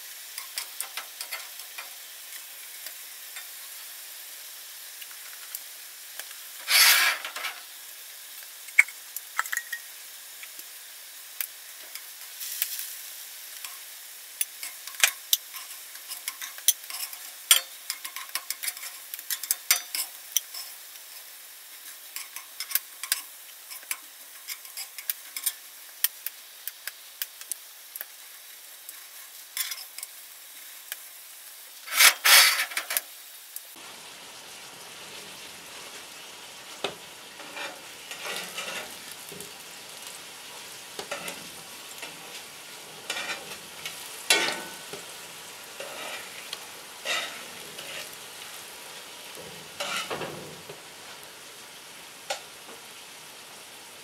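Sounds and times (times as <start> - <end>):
food sizzling in oil: 0.0 - 54.0
metal utensil scraping skillet: 0.4 - 3.8, 6.6 - 7.7, 13.6 - 25.7, 28.9 - 30.2, 31.8 - 33.1, 36.7 - 48.2, 49.3 - 50.4.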